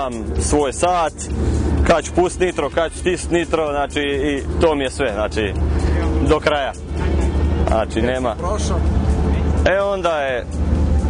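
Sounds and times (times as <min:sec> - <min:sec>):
man talking: 0:00.0 - 0:10.6
car engine rumbling: 0:00.0 - 0:11.0.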